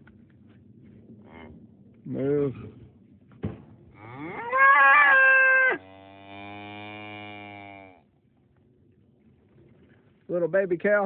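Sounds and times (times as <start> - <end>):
cow mooing: 4.0 - 8.0.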